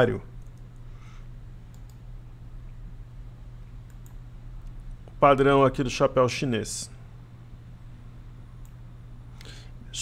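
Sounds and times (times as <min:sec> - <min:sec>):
low electrical hum: 0:00.0 - 0:10.0
computer mouse clicks: 0:00.4 - 0:00.9, 0:01.7 - 0:02.0, 0:03.8 - 0:05.2, 0:08.6 - 0:08.8.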